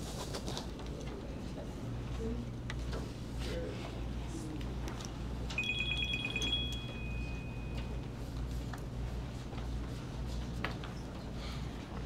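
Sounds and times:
low room hum: 0:00.0 - 0:12.0
electronic alert tone: 0:05.6 - 0:08.0.

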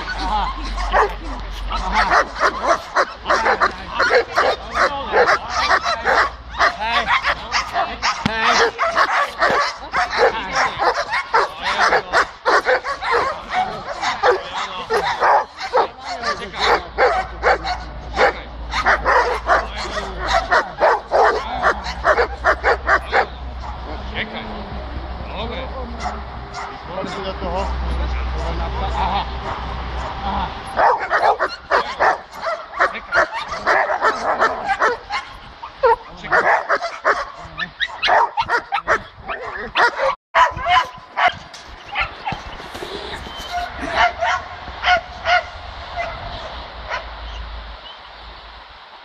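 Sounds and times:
dogs barking rapidly: 0:00.0 - 0:24.0, 0:26.0 - 0:47.4.

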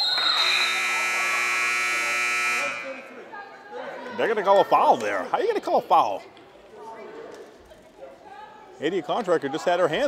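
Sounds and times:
referee's whistle: 0:00.0 - 0:01.4
shot clock buzzer: 0:00.4 - 0:03.0.

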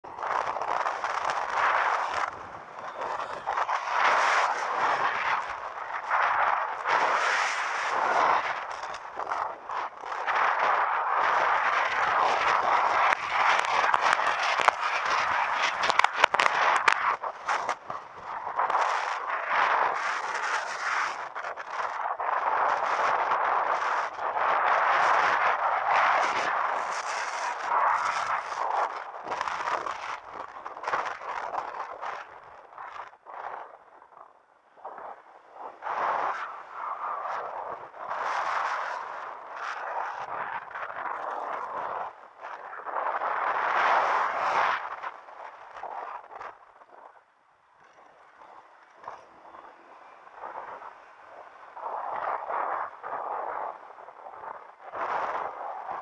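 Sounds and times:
road noise: 0:00.0 - 0:21.2, 0:47.7 - 0:53.0
wind rushing over microphone: 0:00.0 - 0:56.0.

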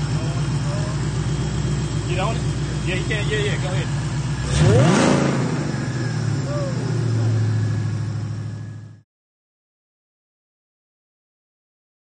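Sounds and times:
car engine revving and idling: 0:00.0 - 0:09.0.

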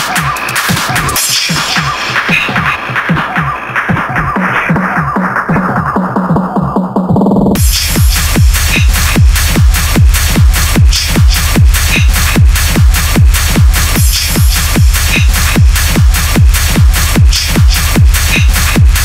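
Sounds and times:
hard techno music: 0:00.0 - 0:19.0
heavy kick drum: 0:00.0 - 0:19.0.

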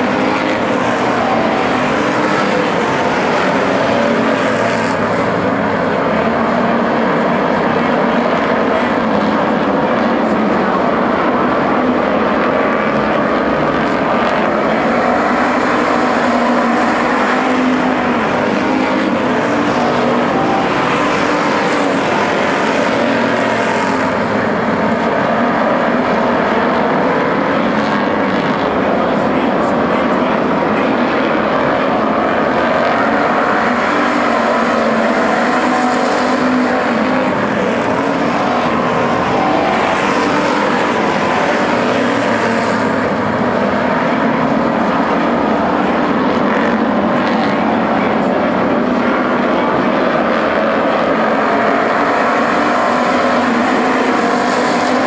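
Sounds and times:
race car engines droning: 0:00.0 - 0:55.0.

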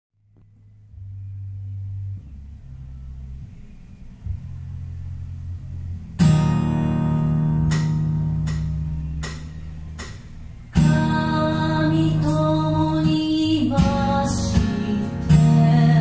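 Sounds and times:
low bass notes: 0:00.2 - 0:16.0.

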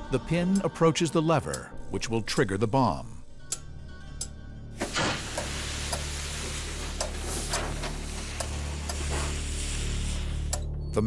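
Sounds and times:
low droning music: 0:00.0 - 0:11.0
lit fuse sizzling and crackling: 0:04.8 - 0:10.8.

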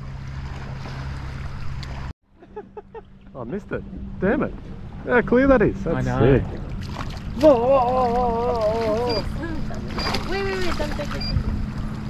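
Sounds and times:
boat motor hum: 0:00.0 - 0:12.0
water noise: 0:00.0 - 0:12.0
wind: 0:00.0 - 0:12.0.

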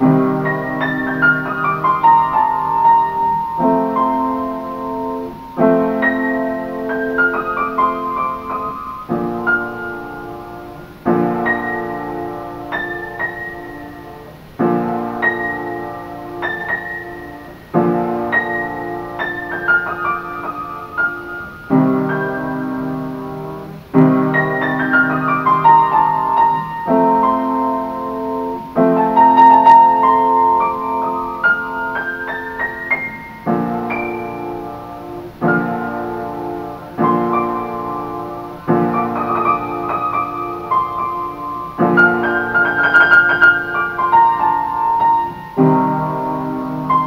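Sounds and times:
upright piano chords: 0:00.0 - 0:47.0.

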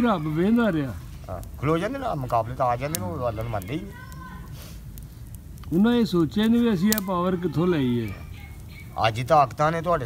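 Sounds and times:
man talking: 0:00.0 - 0:04.1, 0:05.7 - 0:08.2, 0:09.0 - 0:10.0.

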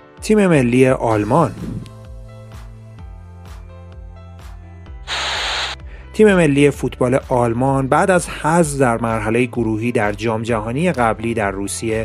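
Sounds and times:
background music with soft beat: 0:00.0 - 0:05.1, 0:05.8 - 0:12.0
burst of hiss transition effect: 0:05.1 - 0:05.8.

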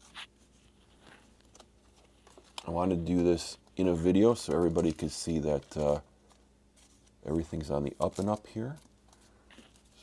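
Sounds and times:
cards rustling into plastic sleeves: 0:00.0 - 0:10.0.

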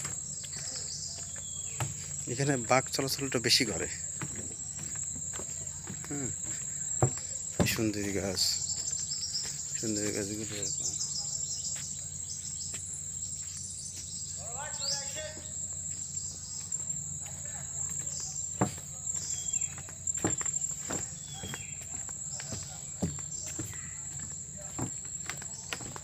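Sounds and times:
shrill insect drone: 0:00.0 - 0:26.0
voices: 0:00.0 - 0:26.0
sharp knocks: 0:07.0 - 0:07.8.

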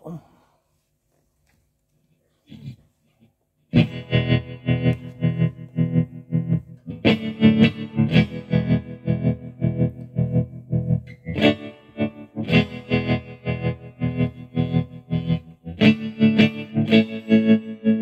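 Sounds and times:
electric guitar chords with tremolo: 0:03.7 - 0:18.0.

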